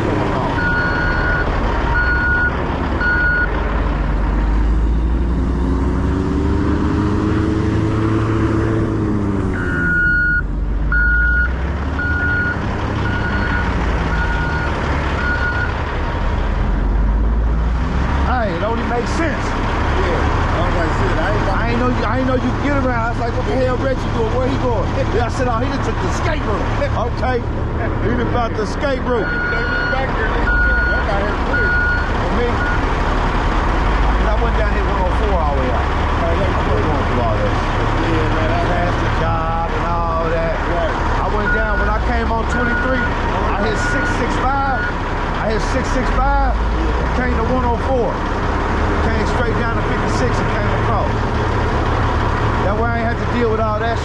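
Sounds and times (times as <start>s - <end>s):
engine revving: 0.0s - 54.0s
heavy diesel engines running: 0.0s - 54.0s
backup alarm beeping: 0.6s - 3.5s, 9.6s - 15.7s.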